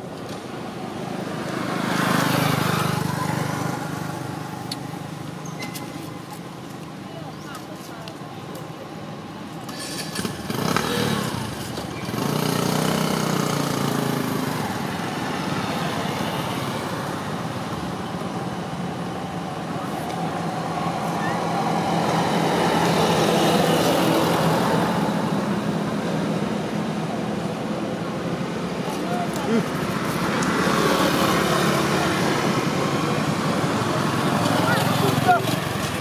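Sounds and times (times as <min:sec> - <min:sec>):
voices in background: 0:02.3 - 0:09.7, 0:27.8 - 0:36.0.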